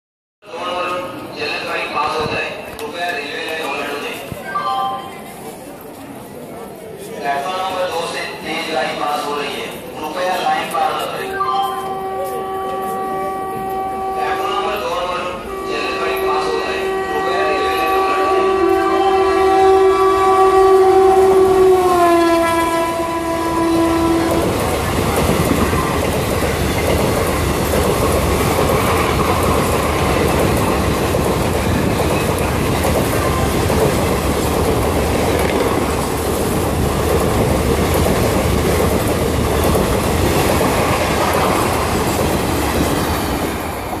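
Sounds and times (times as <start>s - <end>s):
train coaches rumbling and clattering: 0.5s - 44.0s
locomotive horn blast: 11.4s - 24.7s.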